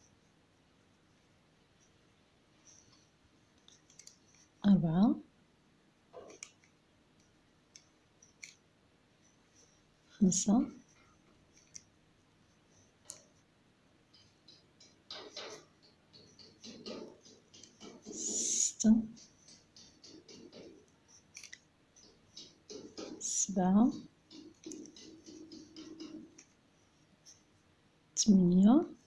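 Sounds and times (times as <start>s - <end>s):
crochet hook clicking: 3.6s - 4.5s, 6.2s - 8.6s, 13.0s - 13.3s, 14.1s - 26.6s.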